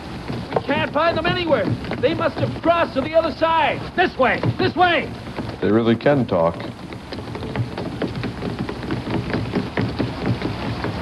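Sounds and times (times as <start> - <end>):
water splashing and sloshing: 0.0 - 11.0.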